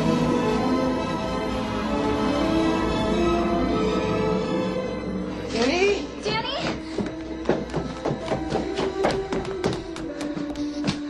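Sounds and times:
quick footsteps on wooden stairs: 0:06.2 - 0:11.0.

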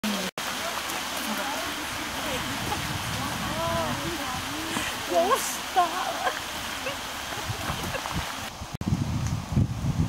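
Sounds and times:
people talking indistinctly: 0:00.6 - 0:07.0.

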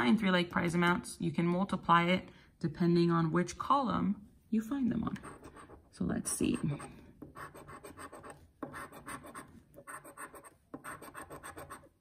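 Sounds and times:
coin scratching lottery ticket: 0:07.4 - 0:11.9.

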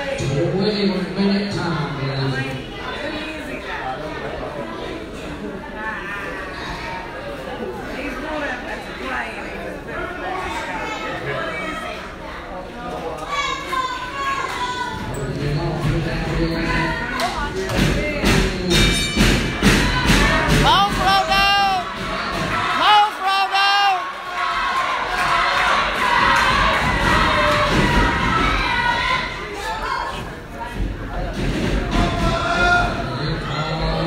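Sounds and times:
crowd cheering: 0:19.5 - 0:30.4, 0:31.4 - 0:34.0
children shouting: 0:19.7 - 0:30.2.

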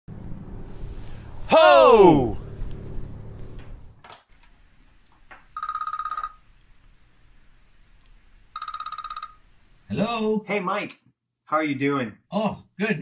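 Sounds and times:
telephone ringing: 0:05.5 - 0:06.5, 0:08.5 - 0:09.5.

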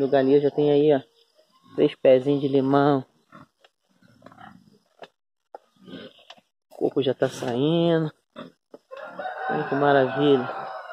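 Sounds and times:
pigs grunting: 0:03.3 - 0:04.9, 0:05.7 - 0:06.3, 0:08.3 - 0:08.6.

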